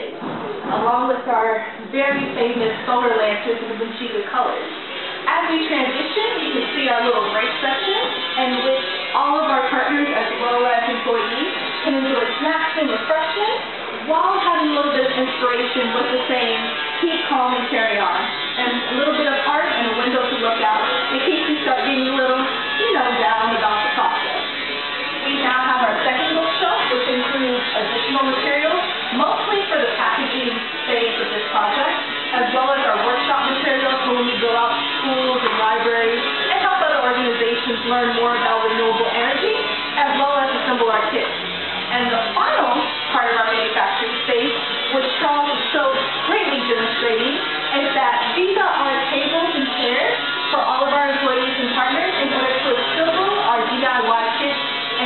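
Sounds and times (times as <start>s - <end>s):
woman talking: 0.0s - 24.5s, 25.2s - 55.0s
steady buzzing tone: 0.0s - 55.0s.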